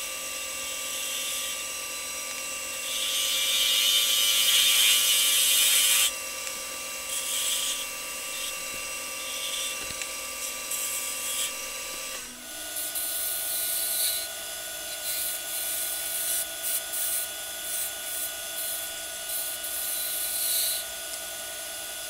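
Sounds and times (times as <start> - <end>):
gouge cutting spinning wood: 0.0 - 20.9
lathe motor whine: 0.0 - 22.0.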